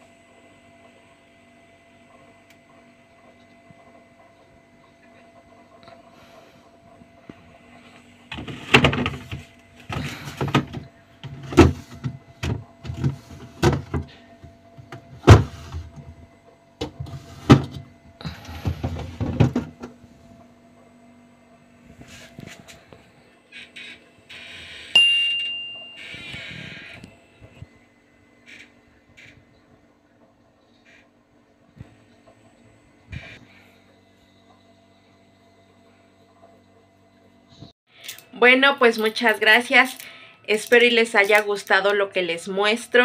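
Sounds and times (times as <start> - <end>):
plastic baskets sliding and knocking: 8.3 - 14.1, 15.2 - 16.2, 16.8 - 19.9
sharp ringing clink: 25.0 - 26.1.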